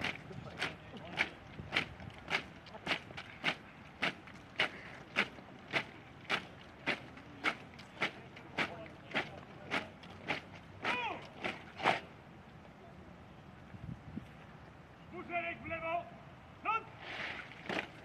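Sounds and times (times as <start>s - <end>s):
boots marching on paving stones: 0.0s - 12.1s.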